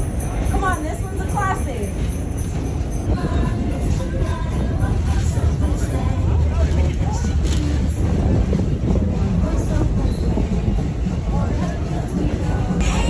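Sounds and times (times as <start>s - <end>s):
passengers chattering: 0.0s - 13.0s
train rumbling along track: 0.0s - 13.0s.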